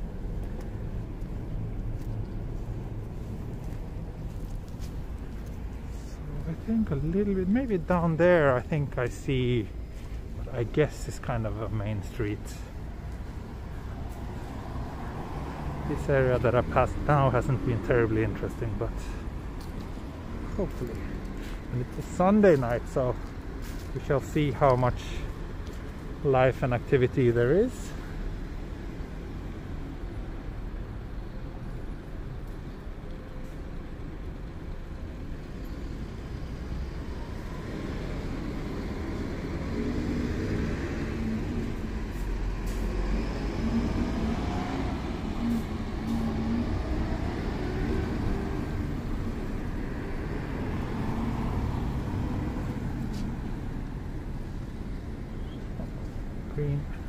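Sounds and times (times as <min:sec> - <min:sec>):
traffic rumble: 0:00.0 - 0:57.0
vehicle engine passing: 0:37.5 - 0:54.1.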